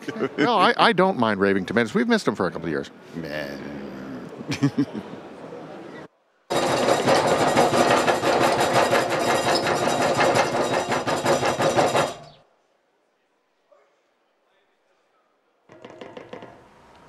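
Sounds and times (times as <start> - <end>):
fast rattle of rapid knocks: 6.5 - 12.4, 15.7 - 16.7.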